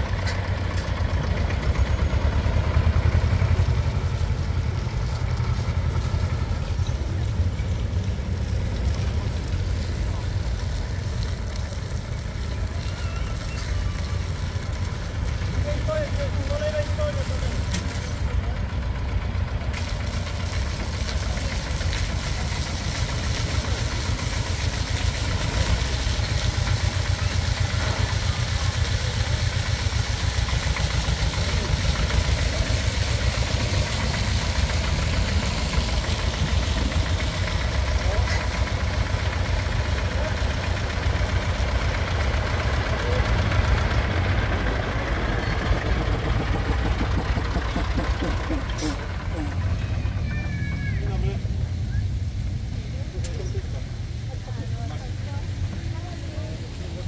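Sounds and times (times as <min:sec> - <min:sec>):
tractor engine chugging: 0:00.0 - 0:57.0.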